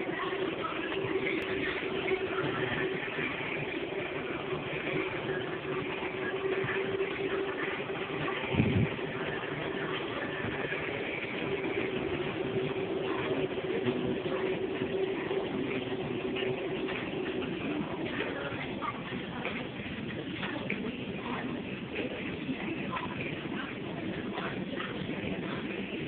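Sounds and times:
mechanical hum: 0.0s - 26.0s.

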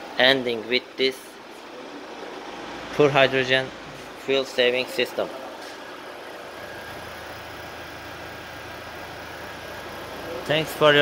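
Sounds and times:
car engine idling: 6.0s - 11.0s.

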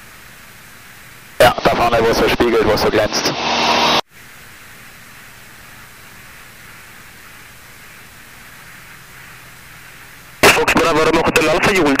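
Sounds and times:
aircraft engine drone: 0.0s - 12.0s
steady hiss: 0.0s - 12.0s.

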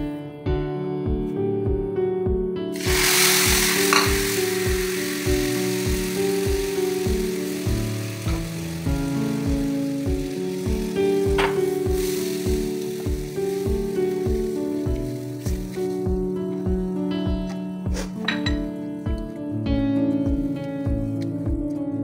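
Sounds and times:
background music with steady beat: 0.0s - 22.0s
milk sizzling in hot pan: 2.8s - 16.9s.

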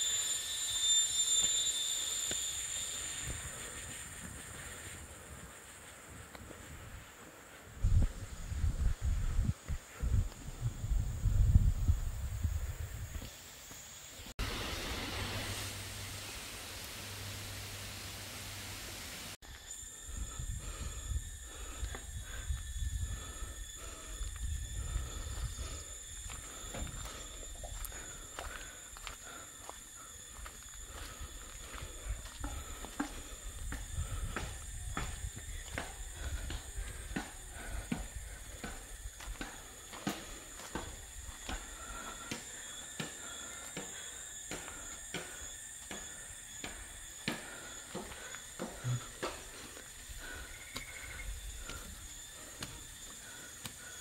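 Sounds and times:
high-pitched drone: 0.0s - 4.2s
steady rushing hiss: 0.0s - 54.0s
wind rumbling on microphone: 3.2s - 13.3s, 20.0s - 28.4s, 30.8s - 39.4s.

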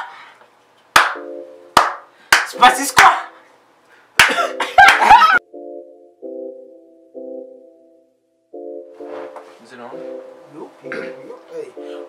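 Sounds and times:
sharp hand claps: 1.0s - 3.2s, 4.2s - 5.1s.

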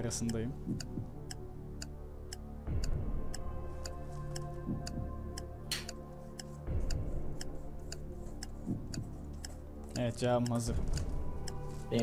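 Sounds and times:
background music with low pulse: 0.0s - 12.0s
countdown clock ticking: 0.0s - 12.0s.

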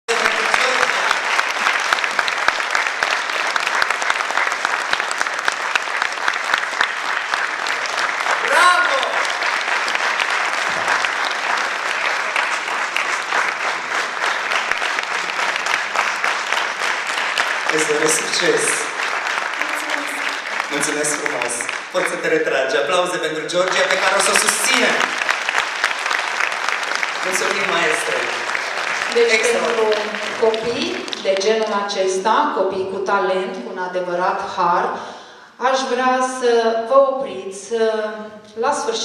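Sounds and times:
audience applauding: 0.0s - 32.0s
person shouting: 8.4s - 9.2s.

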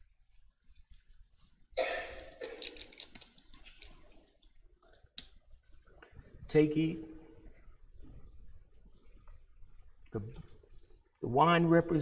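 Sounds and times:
plastic packaging crinkling: 2.3s - 5.9s.

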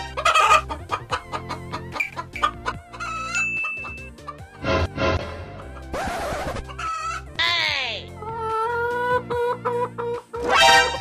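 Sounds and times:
chicken clucking: 0.0s - 4.4s, 5.6s - 7.3s, 8.2s - 10.6s
background music: 0.0s - 11.0s.

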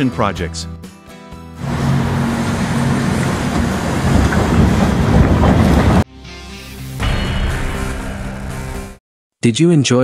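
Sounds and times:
music: 0.0s - 3.3s, 6.0s - 9.0s.

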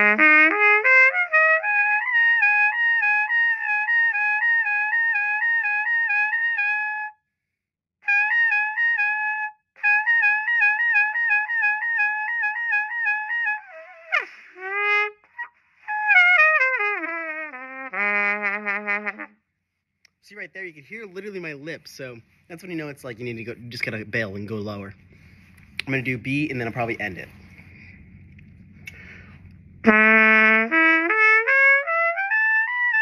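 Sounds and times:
trumpet playing lip slurs: 0.0s - 7.2s, 8.0s - 19.4s, 27.4s - 33.0s
player breathing: 25.0s - 25.8s, 27.3s - 29.7s.

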